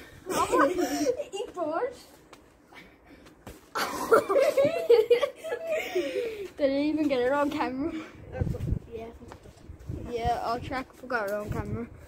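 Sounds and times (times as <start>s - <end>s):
people laughing and chuckling: 0.2s - 1.3s, 3.7s - 6.5s.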